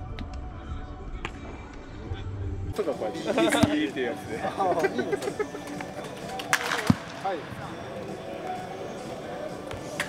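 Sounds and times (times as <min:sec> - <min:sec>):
baseball bat cracking ball: 0:06.4 - 0:07.2.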